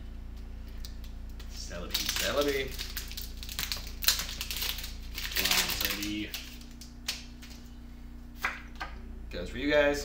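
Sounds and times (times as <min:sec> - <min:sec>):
cards clicking and rustling: 0:01.3 - 0:07.6
foil wrapper tearing and crinkling: 0:01.6 - 0:07.6.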